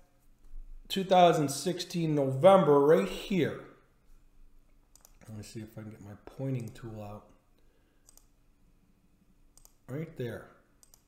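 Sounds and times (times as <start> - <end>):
computer mouse clicks: 4.9 - 5.3, 6.5 - 6.9, 8.0 - 8.4, 9.5 - 9.8, 10.8 - 11.0.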